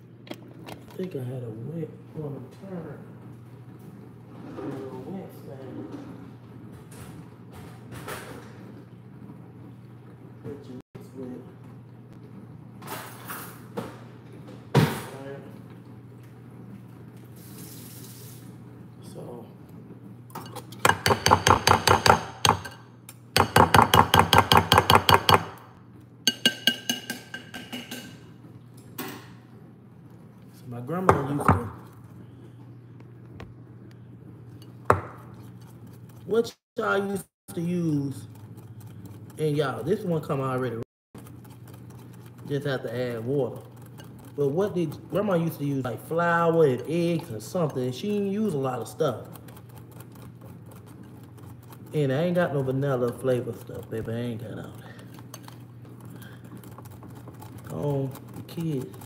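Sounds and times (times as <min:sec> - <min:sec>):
utensil clinking in glass bowl: 0:20.3 - 0:22.8, 0:26.3 - 0:28.3
dishes knocking on counter: 0:20.8 - 0:22.8, 0:23.4 - 0:25.6, 0:26.3 - 0:28.2, 0:31.1 - 0:31.8, 0:34.9 - 0:35.2.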